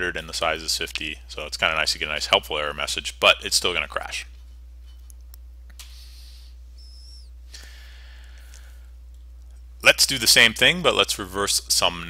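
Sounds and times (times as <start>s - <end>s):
low electrical hum: 0.0s - 12.0s
high whistle-like tone: 6.8s - 7.4s.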